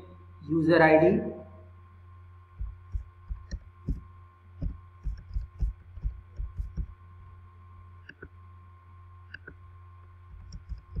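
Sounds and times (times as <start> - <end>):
low hum: 0.0 - 11.0
computer keyboard typing: 2.6 - 4.0, 4.6 - 6.9, 10.3 - 11.0.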